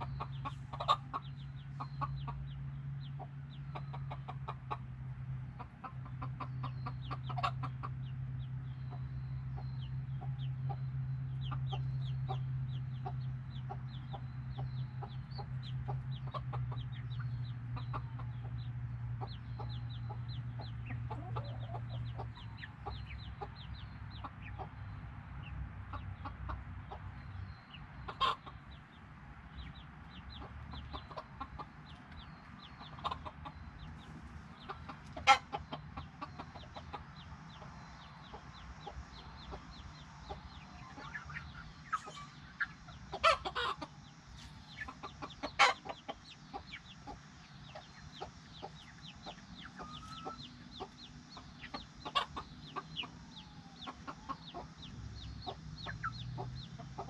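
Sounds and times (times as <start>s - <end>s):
chickens clucking and cheeping: 0.0s - 57.0s.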